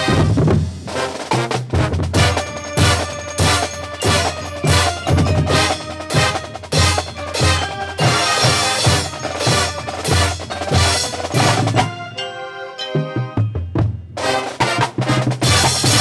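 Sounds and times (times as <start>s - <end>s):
drumline hits: 0.0s - 12.2s, 12.9s - 16.0s
marching band playing: 0.0s - 16.0s.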